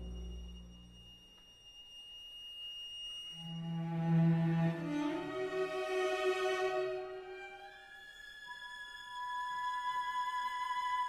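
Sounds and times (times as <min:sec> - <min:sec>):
low orchestral chord: 0:00.0 - 0:01.2
orchestral high held note: 0:00.0 - 0:01.2.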